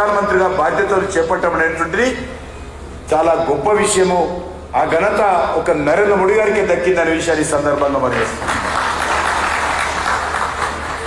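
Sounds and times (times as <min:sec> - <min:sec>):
audience applause: 0:08.2 - 0:11.0.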